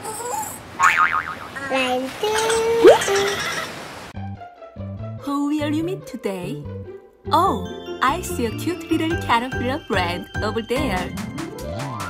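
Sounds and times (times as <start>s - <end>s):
upward boing: 0.8s - 1.5s.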